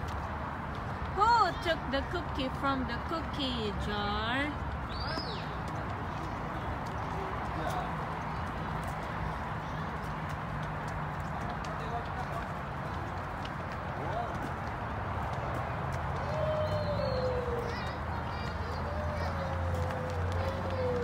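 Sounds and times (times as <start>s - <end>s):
distant voices: 0.0s - 21.0s
outdoor background noise: 0.0s - 21.0s.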